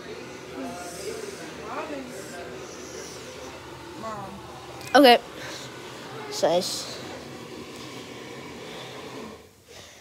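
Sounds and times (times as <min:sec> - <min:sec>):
garbage disposal whirring: 0:00.0 - 0:10.0.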